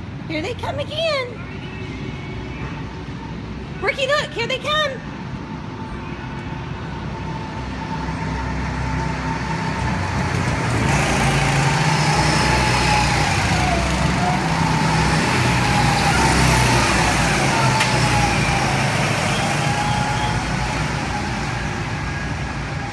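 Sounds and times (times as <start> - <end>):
go-kart engines passing: 7.0 - 22.9.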